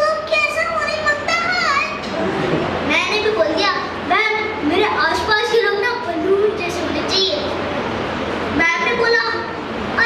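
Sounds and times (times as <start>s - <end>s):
boy speaking into a microphone: 0.0s - 7.8s, 8.5s - 10.0s.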